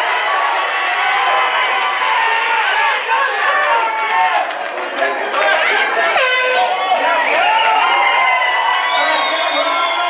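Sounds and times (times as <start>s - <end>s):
crowd shouting and cheering: 0.0s - 10.0s
horn: 6.0s - 6.7s.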